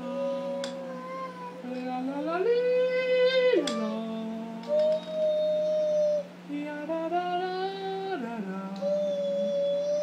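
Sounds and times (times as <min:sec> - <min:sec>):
girl singing long notes: 0:00.0 - 0:10.0
man singing long notes: 0:00.0 - 0:10.0.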